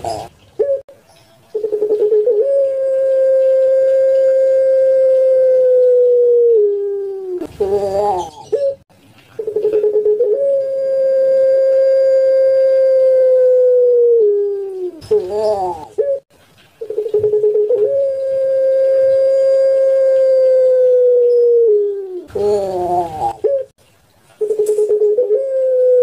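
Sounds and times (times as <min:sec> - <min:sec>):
dove cooing: 0:00.0 - 0:00.8, 0:01.5 - 0:08.8, 0:09.4 - 0:16.2, 0:16.8 - 0:23.7, 0:24.4 - 0:26.0.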